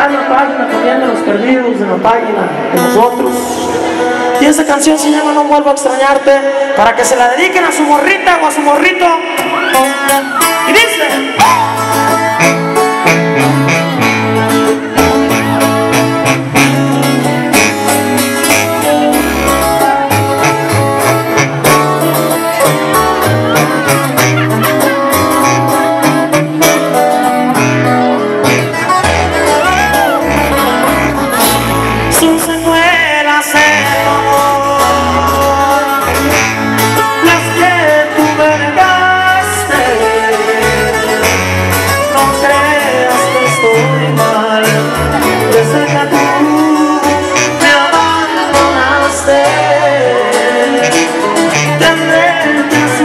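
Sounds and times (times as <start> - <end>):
live band over loudspeakers: 0.0 - 53.0
bass line: 6.9 - 53.0
plucked strings: 11.4 - 32.7.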